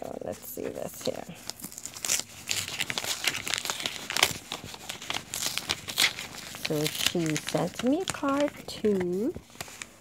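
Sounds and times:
packaging crinkling: 0.0 - 10.0.

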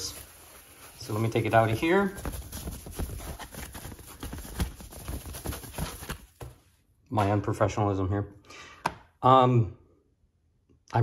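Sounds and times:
packaging rustling: 0.0 - 6.7.

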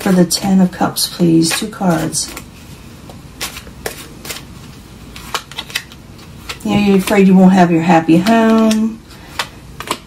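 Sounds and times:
deck of cards shuffled by hand: 1.4 - 7.3, 8.2 - 10.0.

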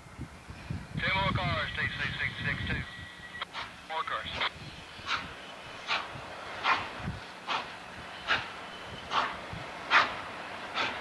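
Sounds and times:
steam locomotive exhaust chuffs: 3.4 - 11.0.

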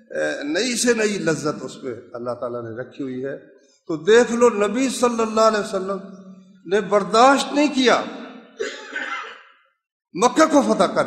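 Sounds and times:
man speaking: 0.0 - 6.1, 6.7 - 8.2, 10.2 - 11.0
man clearing his throat: 8.6 - 9.4.

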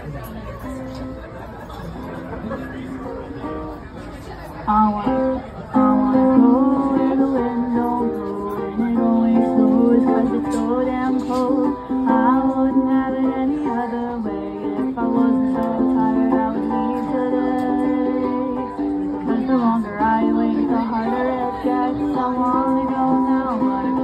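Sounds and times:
ukulele strumming chords: 4.7 - 24.0
woman singing: 4.7 - 24.0.

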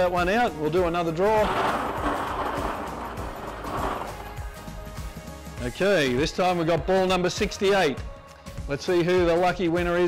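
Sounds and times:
background music: 0.0 - 10.0
plastic balls rattling in drum: 0.9 - 4.7.

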